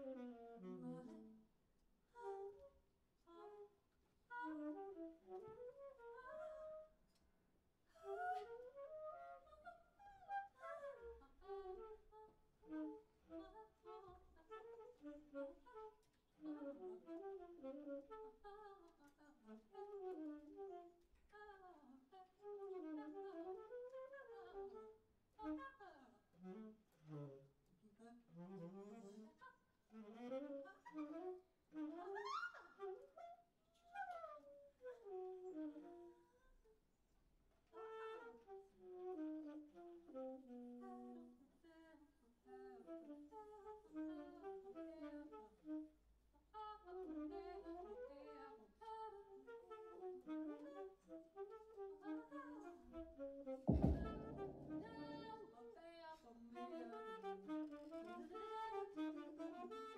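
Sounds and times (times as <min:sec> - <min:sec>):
saxophones brass and woodwinds improvising: 0:53.0 - 0:55.4.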